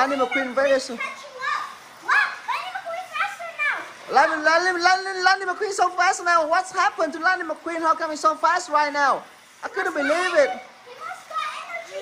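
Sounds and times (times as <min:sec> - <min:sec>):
child's excited calls: 0:00.0 - 0:04.6, 0:09.7 - 0:12.0.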